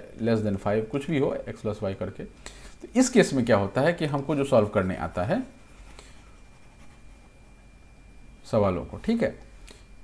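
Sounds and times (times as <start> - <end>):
person speaking: 0.0 - 5.9
stylus scratching on a screen: 5.6 - 7.5.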